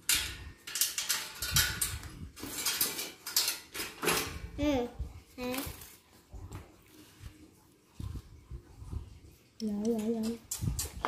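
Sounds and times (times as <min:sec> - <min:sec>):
metallic clanks and knocks: 0:00.0 - 0:04.5.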